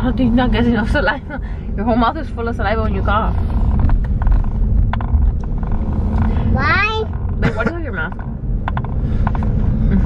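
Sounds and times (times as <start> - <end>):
car interior rumble: 0.0 - 10.0.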